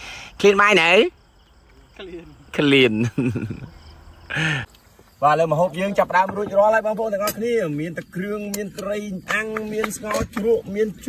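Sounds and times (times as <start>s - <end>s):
crickets chirping: 0.0s - 11.0s
people talking: 1.8s - 3.6s, 5.2s - 11.0s.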